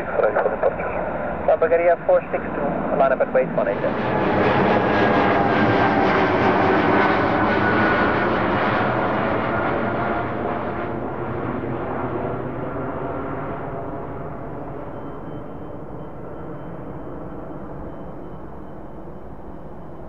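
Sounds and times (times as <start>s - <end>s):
faint engine whine: 0.0s - 20.0s
jet airliner engine noise: 0.0s - 20.0s.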